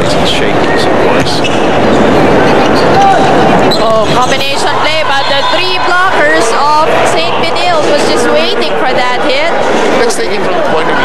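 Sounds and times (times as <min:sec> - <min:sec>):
crowd noise in indoor arena: 0:00.0 - 0:11.0.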